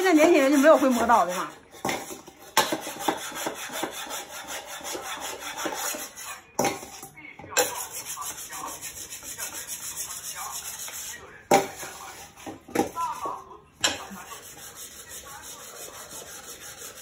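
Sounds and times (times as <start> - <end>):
knife sharpened on whetstone: 0.2 - 6.4, 14.1 - 17.0.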